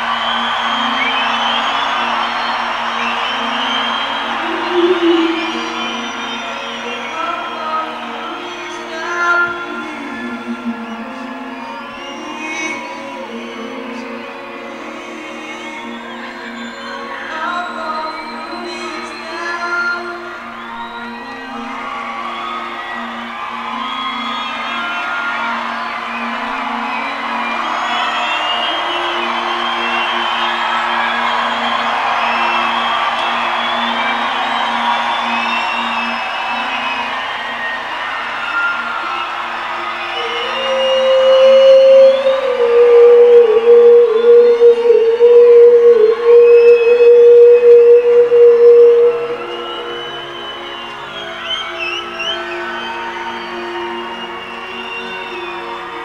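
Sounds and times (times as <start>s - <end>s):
crowd cheering and whooping: 0.0s - 56.0s
low held chord: 0.7s - 12.2s
loud wavering held note: 3.6s - 7.6s, 40.2s - 50.3s.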